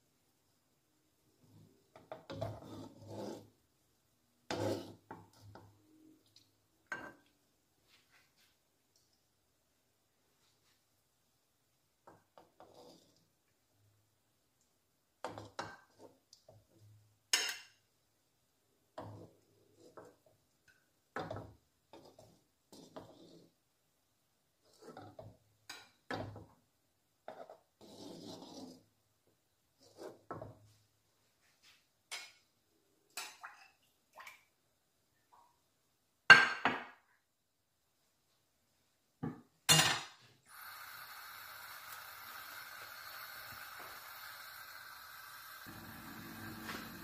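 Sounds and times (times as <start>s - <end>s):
metal spatula scraping a pan: 2.0s - 3.6s, 4.5s - 5.8s, 12.6s - 13.2s, 21.9s - 23.6s, 27.3s - 28.9s.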